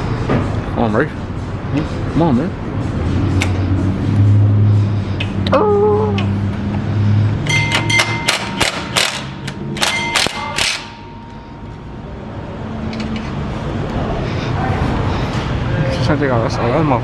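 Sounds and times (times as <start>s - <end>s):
impact wrench hammering: 7.4s - 11.4s
ringing metal clanks: 7.4s - 11.8s.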